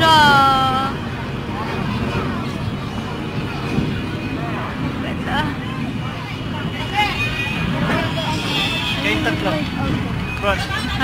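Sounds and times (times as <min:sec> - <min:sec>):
background voices and chatter: 0:00.0 - 0:11.0.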